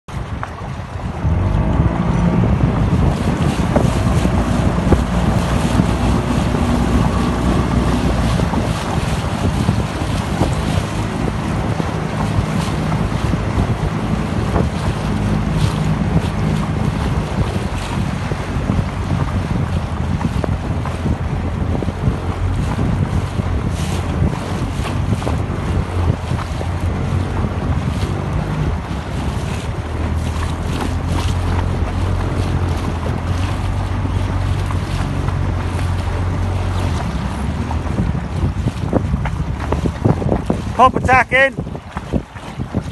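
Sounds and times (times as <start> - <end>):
boat engine humming: 0.1 - 42.9
water splashing along boat hull: 0.1 - 42.9
wind buffeting microphone: 0.1 - 42.9.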